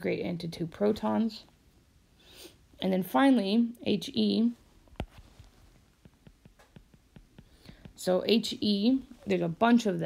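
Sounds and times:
soft breathy sound: 7.3 - 8.0.

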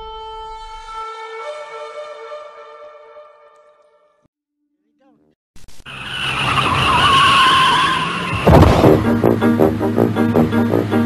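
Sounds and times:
car tyres screeching: 5.9 - 9.6
low thump: 8.3 - 9.8.

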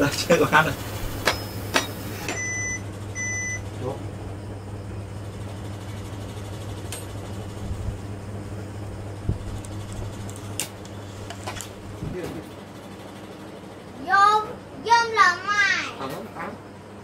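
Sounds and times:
steady low hum: 0.0 - 17.0
short electronic beeps: 1.3 - 3.7.

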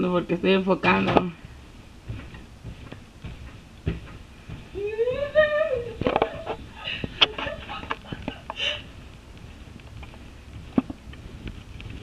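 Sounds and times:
thumps and knocks on a bed: 0.8 - 8.4
woman's wordless call: 4.8 - 6.2.

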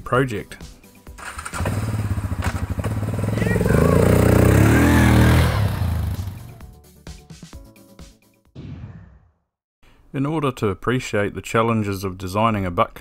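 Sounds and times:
quad bike engine revving: 1.2 - 6.6.

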